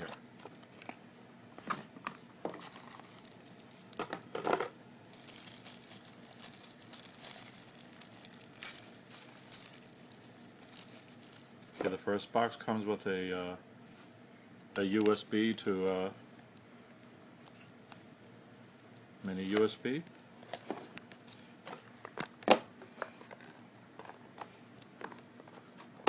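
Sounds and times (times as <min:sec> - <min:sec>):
plastic bag crinkling: 0:02.5 - 0:12.0.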